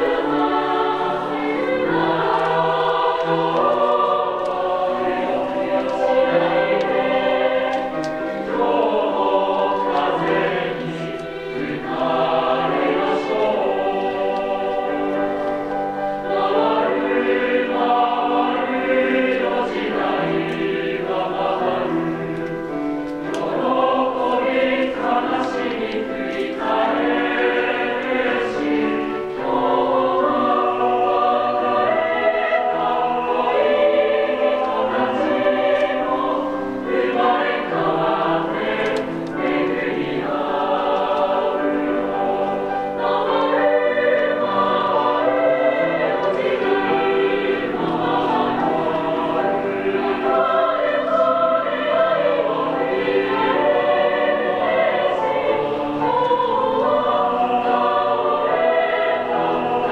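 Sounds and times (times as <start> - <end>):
mixed choir singing in parts: 0.0 - 59.9.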